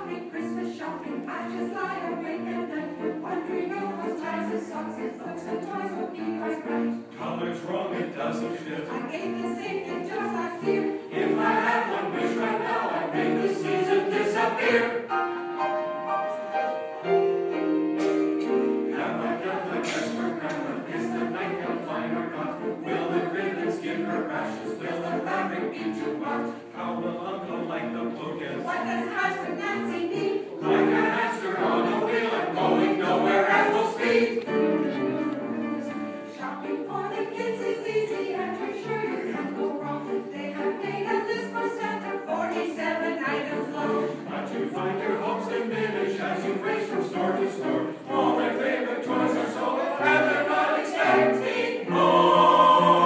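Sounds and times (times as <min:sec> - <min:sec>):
mixed choir singing: 0:00.0 - 0:53.0.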